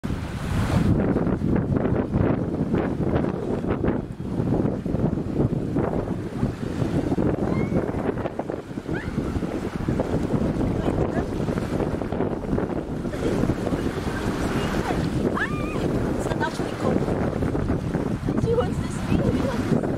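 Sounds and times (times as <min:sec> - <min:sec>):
small waves washing onto shore: 0:00.0 - 0:19.9
wind buffeting microphone: 0:00.0 - 0:19.9.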